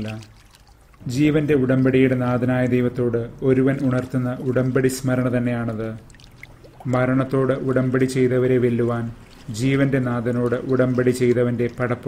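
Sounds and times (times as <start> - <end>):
man speaking: 1.0 - 6.0, 6.8 - 12.0.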